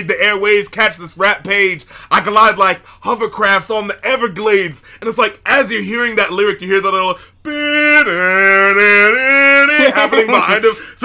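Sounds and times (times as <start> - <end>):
man singing a long tone: 7.5 - 10.2
man laughing: 7.5 - 11.0.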